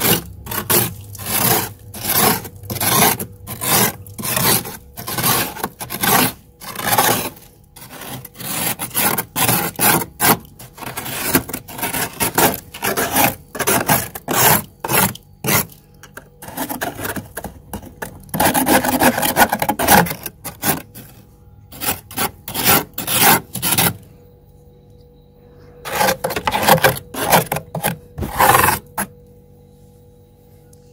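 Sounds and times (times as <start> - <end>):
metal spoon scraping frost: 0.0 - 24.1, 25.8 - 29.2.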